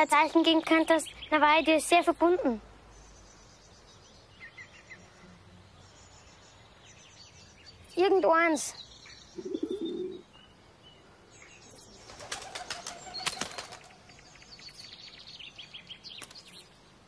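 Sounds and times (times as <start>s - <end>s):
high bird chirps: 5.8s - 10.6s, 11.4s - 16.7s
bird wings flapping: 12.0s - 14.0s.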